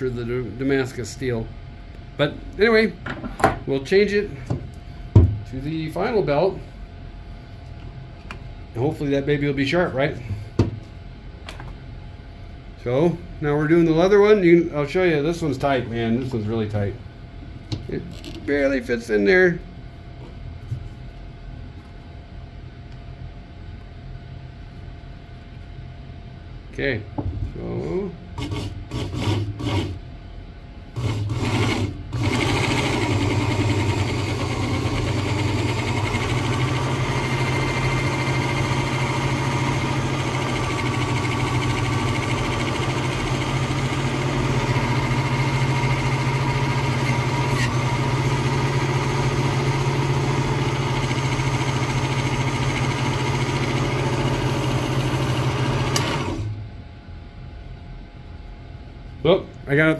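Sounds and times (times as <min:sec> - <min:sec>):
electric motor humming: 0:31.0 - 0:56.6.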